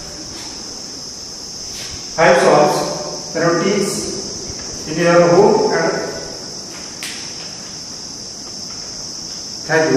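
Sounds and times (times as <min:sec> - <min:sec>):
insects calling: 0:00.0 - 0:09.9
sharp click: 0:07.0 - 0:07.3.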